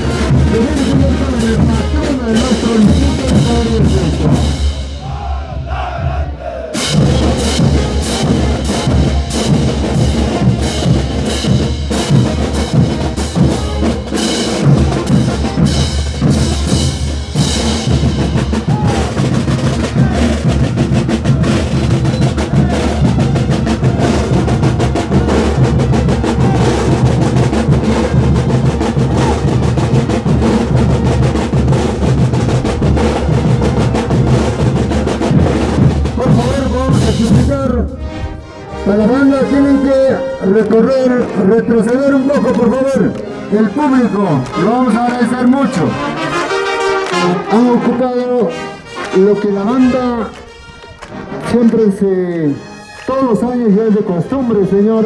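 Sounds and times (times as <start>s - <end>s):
snare drums: 0.0s - 38.0s, 39.0s - 55.0s
bass drums: 0.0s - 39.5s
band playing held notes: 0.0s - 55.0s.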